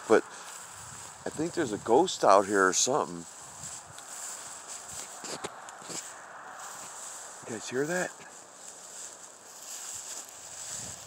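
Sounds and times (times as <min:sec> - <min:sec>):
soft shuffling: 0:00.0 - 0:11.0
steady high-pitched hiss: 0:00.0 - 0:11.0.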